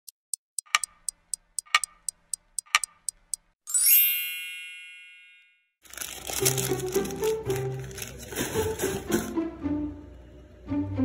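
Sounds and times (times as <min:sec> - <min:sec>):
clock ticking: 0:00.0 - 0:03.6.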